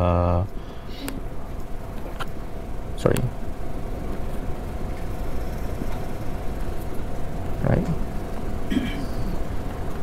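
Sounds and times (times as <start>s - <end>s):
room noise rumble and hum: 0.0s - 10.0s.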